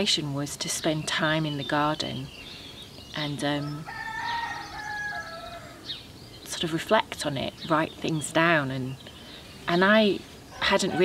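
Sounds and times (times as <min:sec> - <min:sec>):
rooster crowing: 0:03.8 - 0:05.8.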